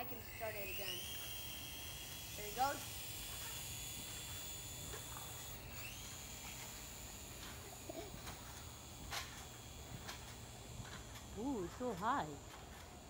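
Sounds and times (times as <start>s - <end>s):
toy helicopter motor whining: 0.0s - 13.0s.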